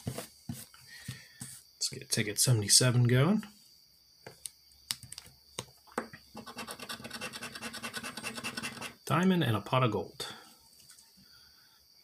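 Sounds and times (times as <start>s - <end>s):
scratch-off ticket being scraped: 6.4s - 9.0s.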